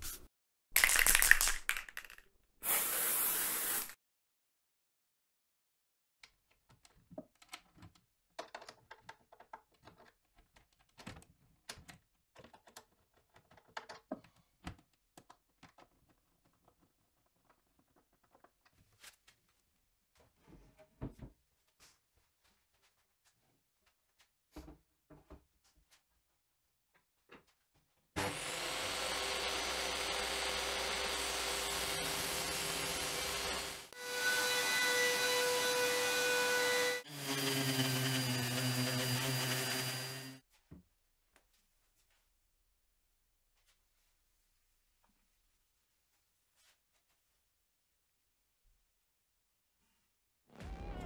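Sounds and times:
table saw cutting wood: 2.6 - 4.0, 28.2 - 40.4
handheld sander running: 28.2 - 40.4
woodworking machine running: 28.2 - 40.4.

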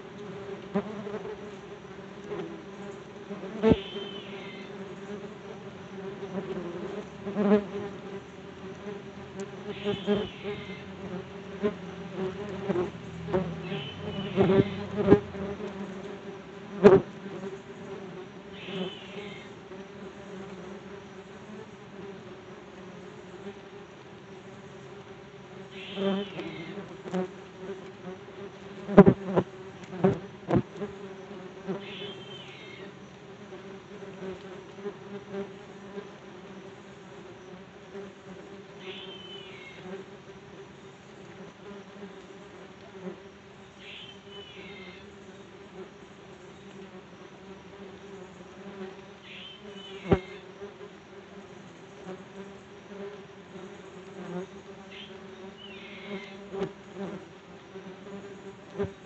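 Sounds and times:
yellow jackets buzzing: 0.0 - 59.0.

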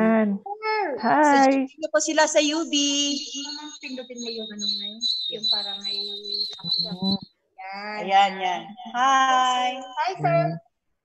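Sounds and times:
voices over video call: 0.0 - 10.9
thin steady high tone: 2.1 - 7.2.

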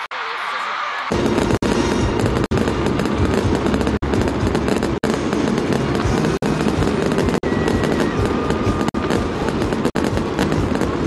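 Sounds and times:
fireworks bursts and crackling: 1.0 - 11.0.

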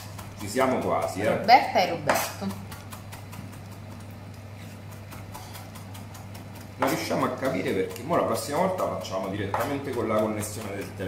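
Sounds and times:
knife chopping on cutting board: 0.0 - 11.0.

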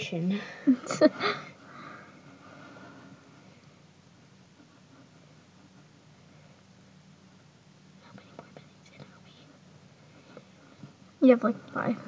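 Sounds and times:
low steady hum: 0.0 - 12.0
faint whispering: 8.0 - 9.6.

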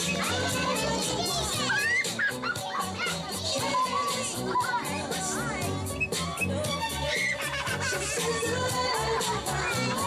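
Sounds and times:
children calling out: 0.0 - 10.0
music with steady beat: 0.0 - 10.0.

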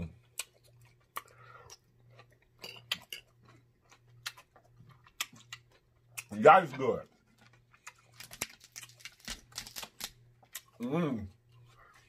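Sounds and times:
mouth chewing salad: 0.1 - 9.6.

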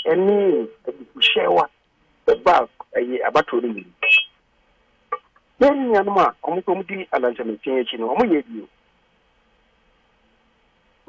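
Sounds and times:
man talking on radio: 0.0 - 1.7, 2.3 - 4.0, 5.6 - 8.7.

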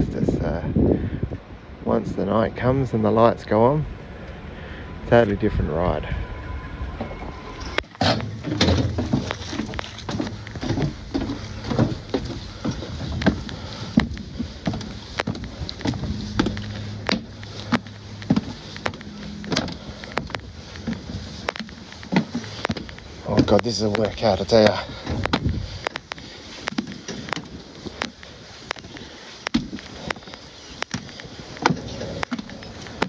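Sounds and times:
footsteps on metal stairs: 7.0 - 33.0.

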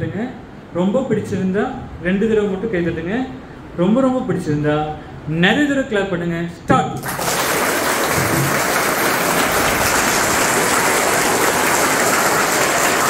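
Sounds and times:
children clapping: 7.0 - 13.0.

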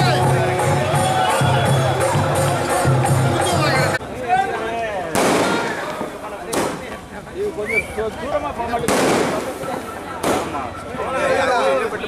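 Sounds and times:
fireworks bangs: 5.1 - 7.0, 8.8 - 10.7.

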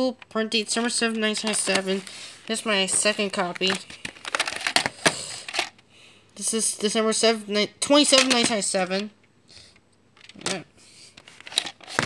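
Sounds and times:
plastic case rustling: 0.6 - 5.8, 11.2 - 12.0.

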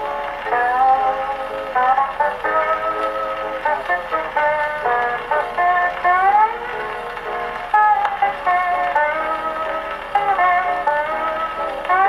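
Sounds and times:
guitar accompaniment: 0.0 - 12.0
steel guitar melody: 0.0 - 12.0.

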